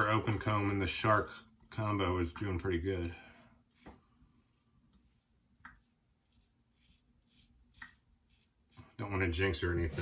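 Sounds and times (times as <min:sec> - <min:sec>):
safety razor scraping stubble: 0:05.0 - 0:08.9.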